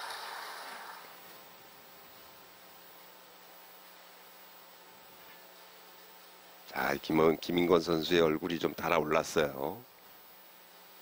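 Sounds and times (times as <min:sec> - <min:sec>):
soft hiss: 0:00.0 - 0:11.0
steady low hum: 0:00.0 - 0:11.0.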